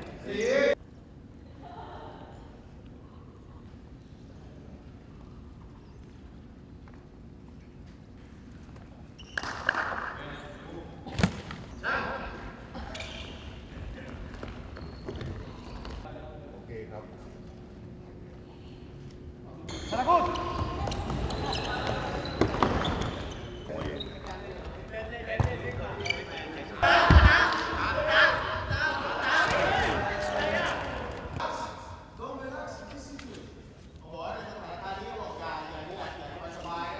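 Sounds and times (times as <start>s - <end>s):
low rumbling hall background noise: 0.0s - 36.9s
players shouting: 26.8s - 31.5s.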